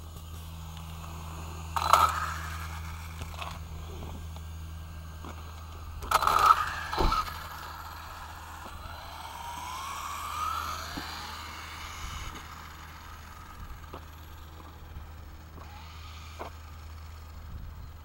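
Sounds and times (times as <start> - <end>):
steady low rumble: 0.0 - 18.0
toy car motor whining: 0.0 - 18.0.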